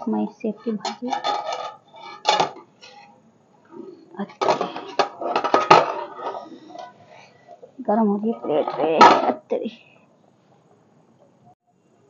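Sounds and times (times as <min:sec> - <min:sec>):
metal lid clattering on pot: 0:00.8 - 0:03.0, 0:04.4 - 0:06.4.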